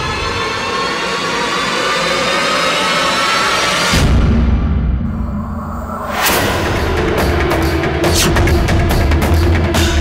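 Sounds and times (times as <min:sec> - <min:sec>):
suspense drone score: 0:00.0 - 0:10.0.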